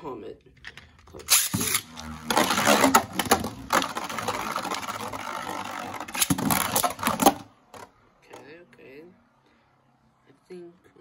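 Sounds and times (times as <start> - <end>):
spinning top launched: 1.2 - 7.5
spinning top whirring: 1.2 - 7.8.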